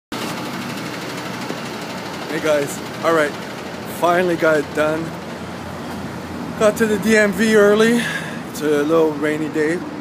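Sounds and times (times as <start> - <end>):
street noise: 0.1 - 10.0
vehicle engine running: 0.2 - 10.0.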